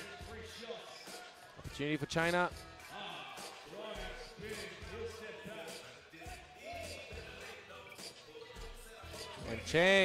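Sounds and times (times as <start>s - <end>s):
arena music: 0.0s - 10.0s.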